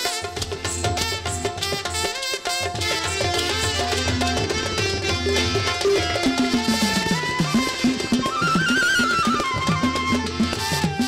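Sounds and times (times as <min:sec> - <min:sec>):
folk melody line: 0:00.0 - 0:11.0
stick-struck barrel drum: 0:00.0 - 0:11.0
tabla: 0:00.0 - 0:11.0.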